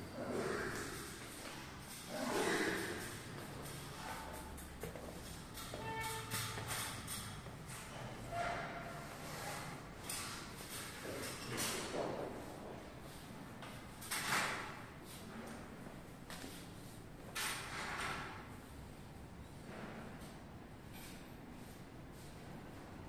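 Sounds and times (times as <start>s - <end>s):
rustling and knocking of work: 2.8s - 18.6s.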